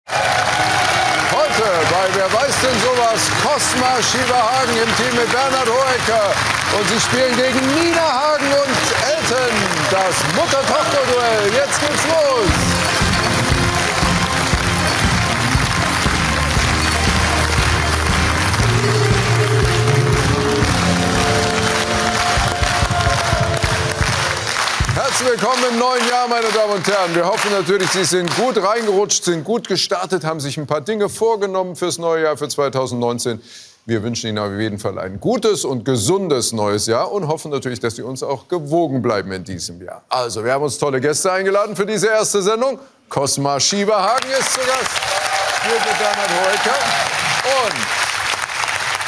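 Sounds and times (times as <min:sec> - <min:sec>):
quiz show theme music: 0:00.1 - 0:28.5, 0:44.2 - 0:49.0
audience applauding: 0:00.1 - 0:29.3, 0:44.0 - 0:49.0
person speaking: 0:01.5 - 0:17.4.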